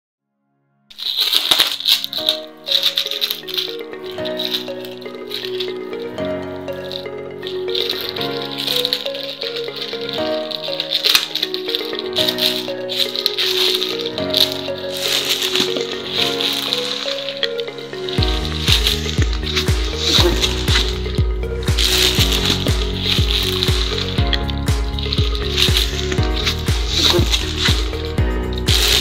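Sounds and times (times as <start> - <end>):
background music of held chords: 0.9 - 29.0
plastic bag crinkling: 0.9 - 29.0.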